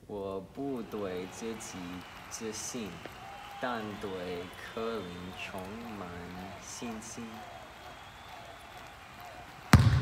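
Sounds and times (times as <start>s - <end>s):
basketball bouncing on hardwood floor: 9.7s - 10.0s.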